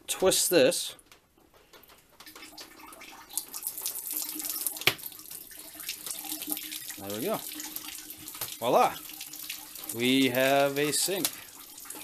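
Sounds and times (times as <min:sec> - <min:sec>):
water splashing into sink: 0:02.2 - 0:12.0.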